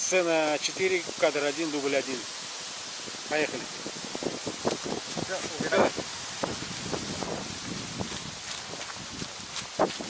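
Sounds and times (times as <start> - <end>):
outdoor background hiss: 0.0 - 10.0
footsteps through grass: 4.0 - 10.0.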